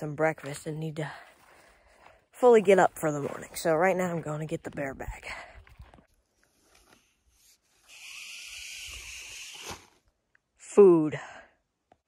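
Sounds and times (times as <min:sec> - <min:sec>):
cord rubbing over tree branch: 0:06.3 - 0:10.1.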